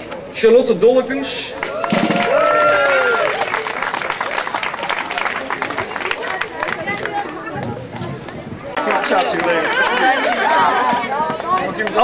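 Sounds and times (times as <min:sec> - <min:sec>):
crowd chatter: 0:00.0 - 0:12.0
people clapping: 0:01.4 - 0:12.0.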